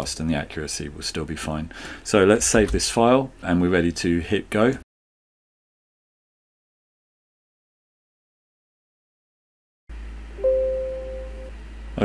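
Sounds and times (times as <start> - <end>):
steady low hum: 9.9 - 12.0
two-note notification chime: 10.4 - 11.5.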